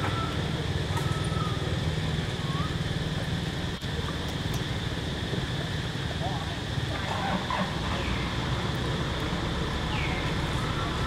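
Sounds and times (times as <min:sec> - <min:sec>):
thin whistled calls: 0:01.0 - 0:01.6, 0:09.9 - 0:11.0.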